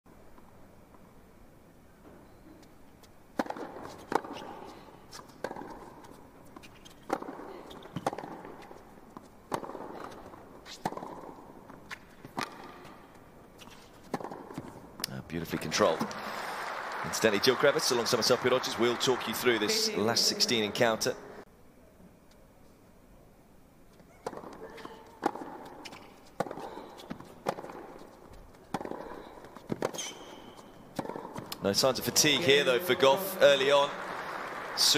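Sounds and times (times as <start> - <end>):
ball bounces and footsteps: 2.0 - 16.1, 23.9 - 32.4
rackets hitting tennis ball: 3.3 - 16.4, 23.9 - 32.7.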